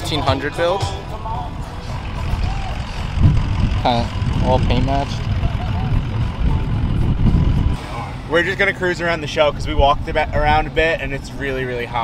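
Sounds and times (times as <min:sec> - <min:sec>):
uneven low rumble: 0:00.4 - 0:08.4.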